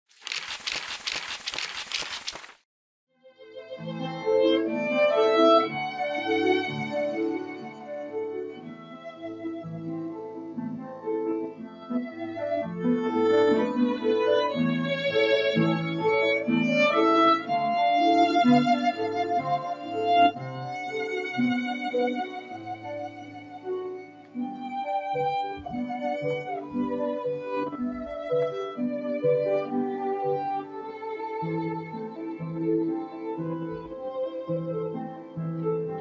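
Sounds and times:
quick clicks: 0:00.1 - 0:02.6
paper page flipping: 0:00.1 - 0:02.7
piano accompaniment: 0:03.8 - 0:36.0
violin playing slow notes: 0:11.6 - 0:36.0.

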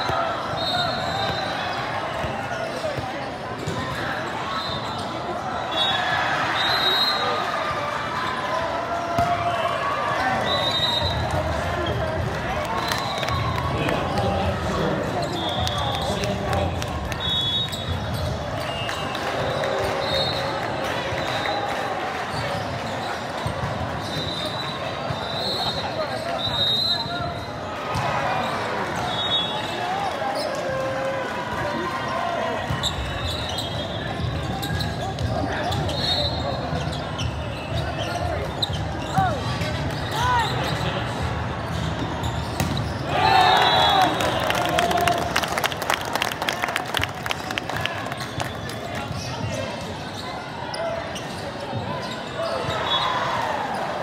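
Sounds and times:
crowd shouting and cheering: 0:00.0 - 0:54.0
players and spectators calling out: 0:00.0 - 0:54.0
sneakers squeaking on court: 0:09.0 - 0:09.4, 0:17.7 - 0:18.8, 0:32.6 - 0:43.2, 0:48.2 - 0:53.9.

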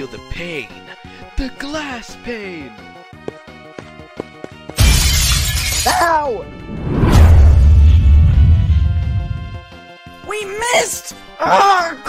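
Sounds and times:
background music with steady beat: 0:00.0 - 0:04.8
glass shattering: 0:04.8 - 0:06.1
heavy low thud: 0:06.4 - 0:09.7.

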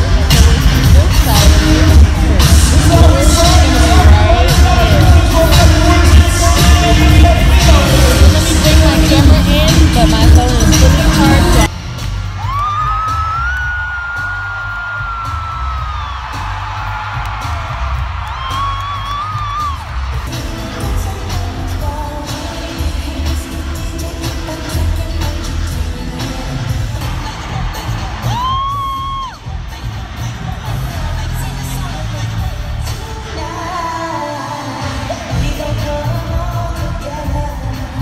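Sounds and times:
live pop concert music: 0:00.0 - 0:38.0.

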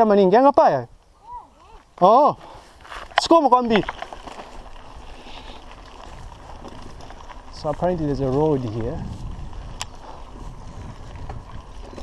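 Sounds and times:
bike tyres rumbling on dirt: 0:01.7 - 0:12.0.

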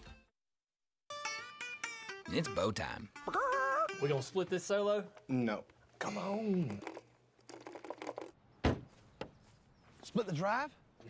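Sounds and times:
dull thump: 0:08.6 - 0:09.4.

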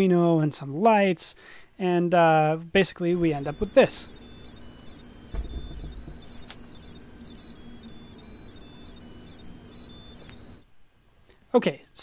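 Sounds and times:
buzzy electronic beeps: 0:03.2 - 0:10.6.

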